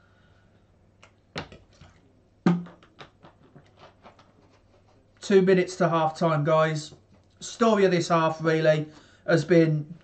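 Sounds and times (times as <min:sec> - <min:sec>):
plastic bottle crackling: 0:01.4 - 0:04.8.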